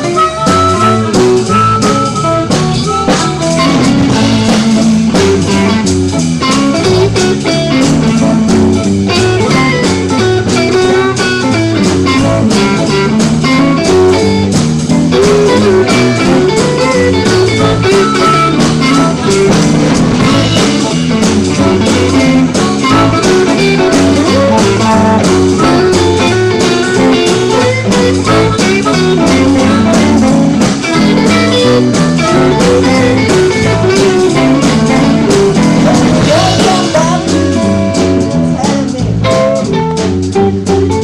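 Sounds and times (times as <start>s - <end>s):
harmonica: 0.0s - 39.7s
blues band playing: 0.0s - 41.0s.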